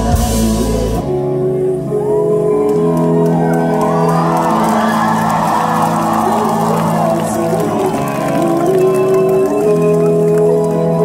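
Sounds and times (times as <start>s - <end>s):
rock band with electric guitars: 0.0s - 11.0s
crowd cheering and shouting: 1.8s - 11.0s.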